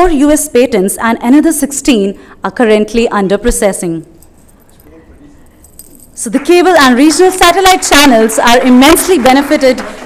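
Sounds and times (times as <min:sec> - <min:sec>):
light clinks: 0:04.1 - 0:06.2.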